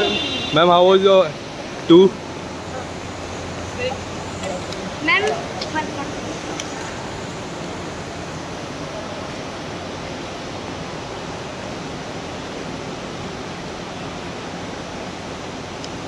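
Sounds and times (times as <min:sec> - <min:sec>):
terminal hall ambience: 0:00.0 - 0:16.0.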